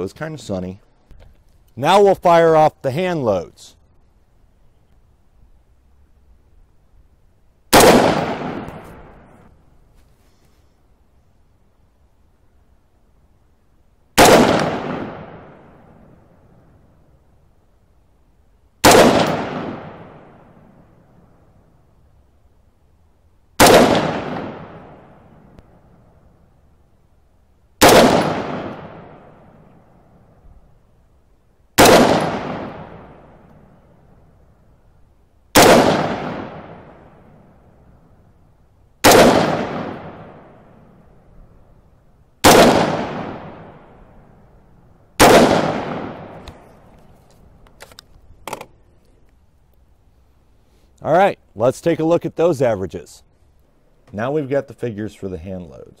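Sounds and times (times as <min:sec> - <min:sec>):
rifle shot echoing: 0:07.7 - 0:09.5, 0:14.2 - 0:16.6, 0:18.8 - 0:21.2, 0:23.6 - 0:26.0, 0:27.8 - 0:30.3, 0:31.8 - 0:34.0, 0:35.5 - 0:37.9, 0:39.0 - 0:41.2, 0:42.4 - 0:46.9.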